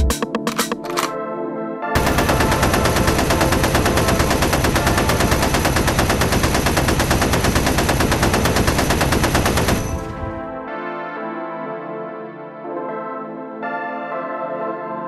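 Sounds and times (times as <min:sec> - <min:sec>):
rapid machine-gun fire: 0:02.0 - 0:10.4.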